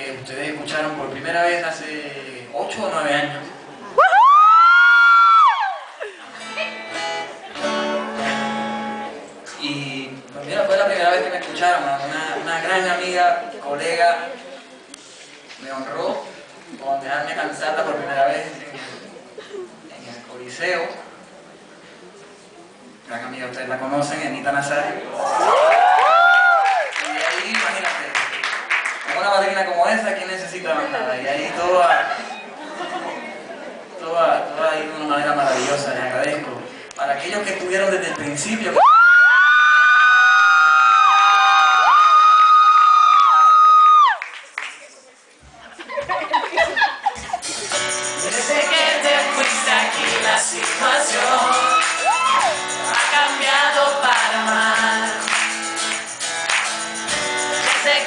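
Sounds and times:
murmur of voices: 0.0 - 25.5, 29.2 - 38.9, 44.4 - 56.3
shrill cry from audience: 4.0 - 6.0, 25.2 - 27.0, 38.8 - 44.2, 51.3 - 52.7
acoustic guitar notes: 6.3 - 9.5.

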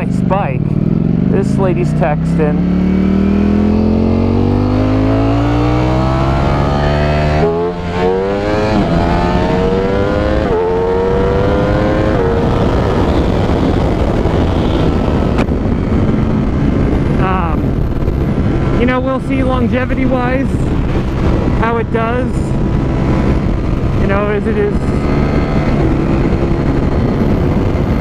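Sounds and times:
motorcycle engine accelerating: 0.0 - 28.0
wind rush on microphone: 0.0 - 28.0.

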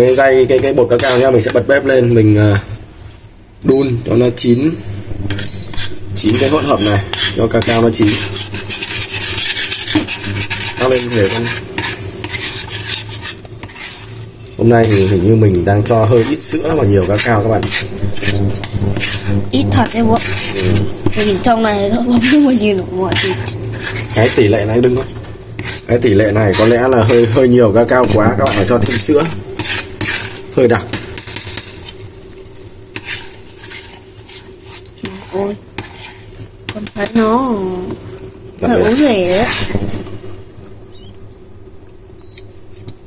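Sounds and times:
metal spoon scraping a saucepan: 0.0 - 1.6, 3.7 - 37.2, 38.6 - 41.2.

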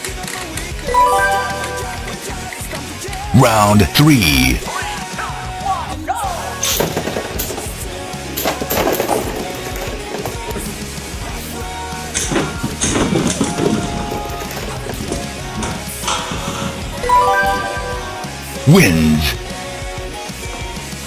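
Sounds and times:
rock music: 0.0 - 21.0.

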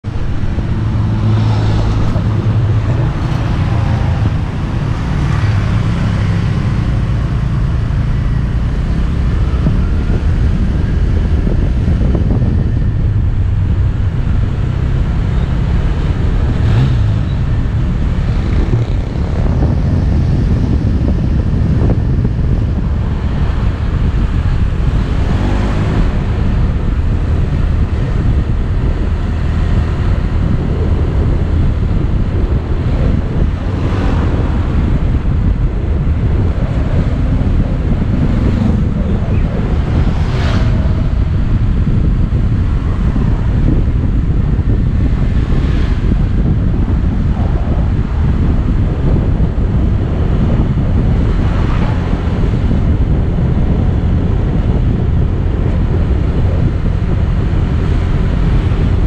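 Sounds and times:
wind on microphone: 0.0 - 59.0.

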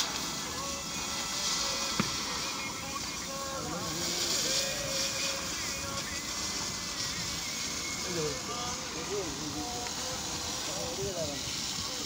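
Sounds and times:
cutting torch hissing: 0.0 - 12.0.

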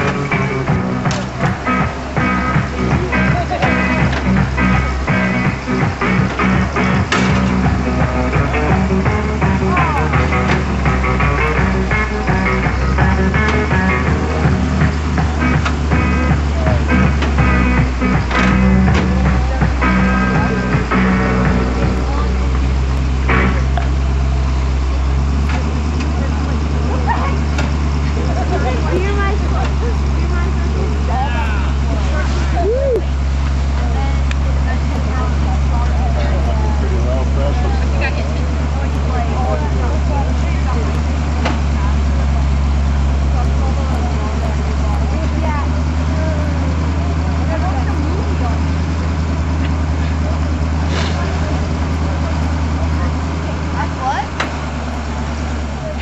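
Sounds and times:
people talking: 0.0 - 56.0
truck engine running: 0.0 - 56.0.

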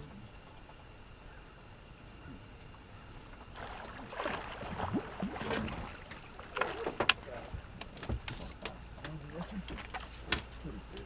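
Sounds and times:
landing net knocking against boat: 3.5 - 11.0
low muttered voices: 6.5 - 11.0.

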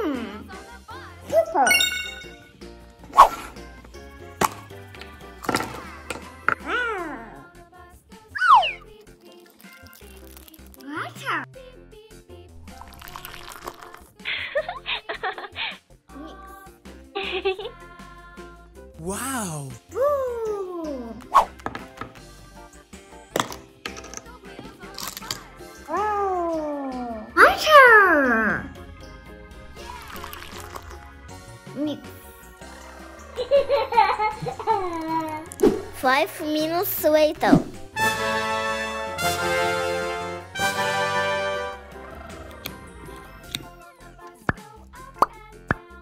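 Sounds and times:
soft background music: 0.0 - 46.0.

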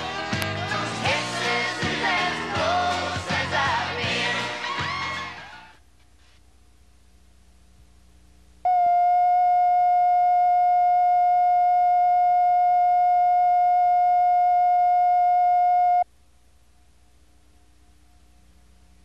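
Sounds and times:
faint low hum: 5.8 - 19.0
buzzy electronic test tone: 8.6 - 16.1.

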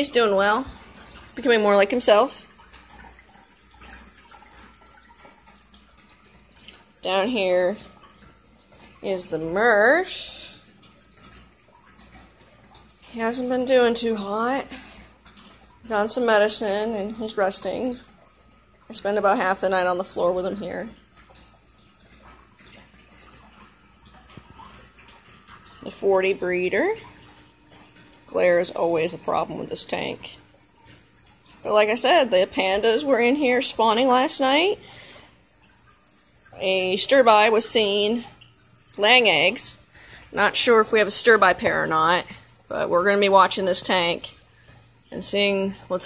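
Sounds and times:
low steady hum: 0.0 - 46.0
water trickling from aquarium filter: 0.0 - 46.0.

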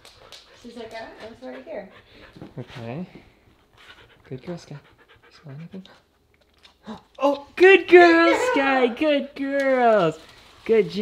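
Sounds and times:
dog sniffing: 0.0 - 6.2
dog panting softly: 0.0 - 6.4.

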